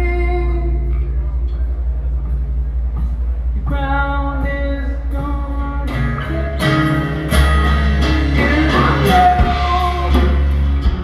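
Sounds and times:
bass guitar note: 0.0s - 11.0s
guitar: 0.0s - 11.0s
person singing: 3.7s - 11.0s.

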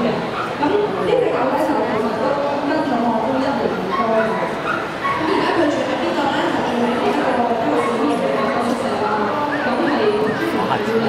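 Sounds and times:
voices chattering in a hall: 0.0s - 11.0s
dog barking: 3.7s - 5.4s, 7.7s - 8.9s.

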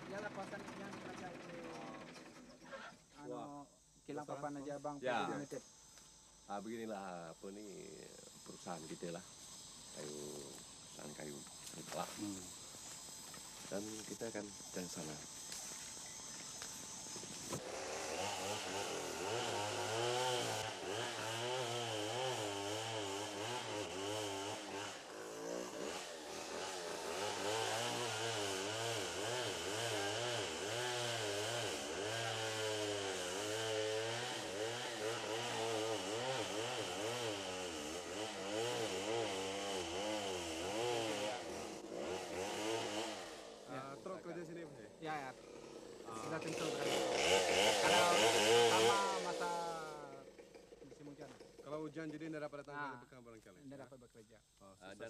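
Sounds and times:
chainsaw running: 0.0s - 3.4s, 4.4s - 52.4s.

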